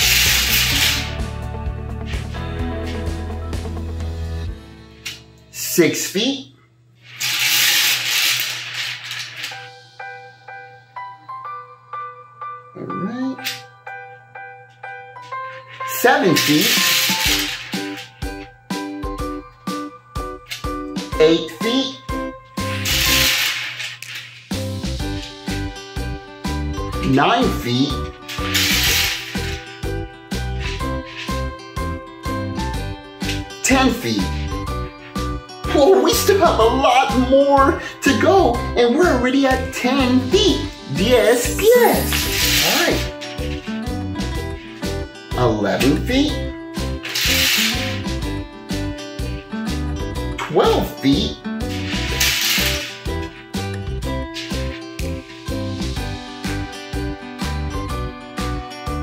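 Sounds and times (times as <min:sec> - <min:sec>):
plastic beads rattling on wood: 0:00.0 - 0:01.2, 0:07.0 - 0:09.8, 0:15.3 - 0:18.5, 0:22.6 - 0:25.5, 0:28.1 - 0:29.8, 0:30.4 - 0:31.6, 0:41.0 - 0:45.0, 0:47.0 - 0:48.3, 0:51.6 - 0:56.0
background music: 0:00.0 - 0:05.9, 0:09.3 - 0:59.0.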